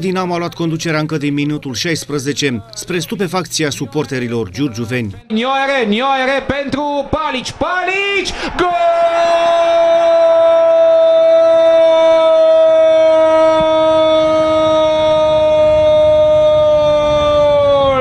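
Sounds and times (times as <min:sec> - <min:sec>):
commentator shouting goal: 0:02.9 - 0:12.6.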